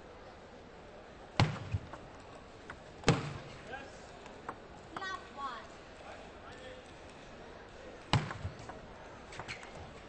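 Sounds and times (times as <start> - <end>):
table tennis ball knocks: 1.4 - 2.0.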